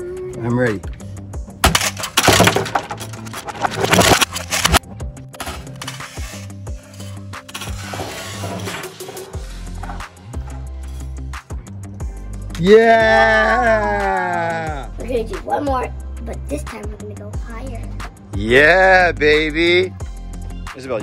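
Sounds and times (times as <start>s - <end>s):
toy truck crashing into plastic box: 1.6s - 4.8s, 7.5s - 10.0s
background music with steady beat: 4.6s - 21.0s.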